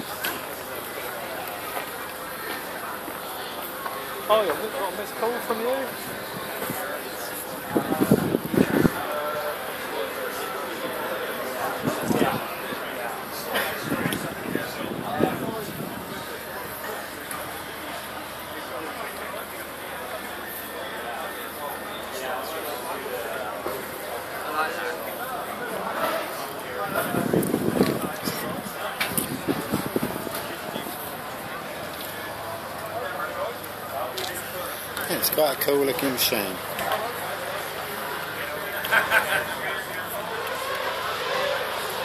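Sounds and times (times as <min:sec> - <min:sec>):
crowd chatter: 0:00.0 - 0:42.0
murmur of voices: 0:00.0 - 0:42.0.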